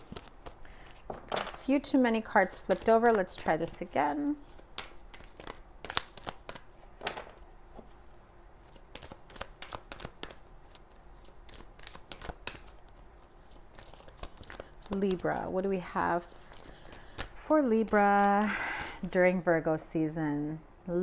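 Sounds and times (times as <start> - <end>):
cards being shuffled: 0.0 - 18.0.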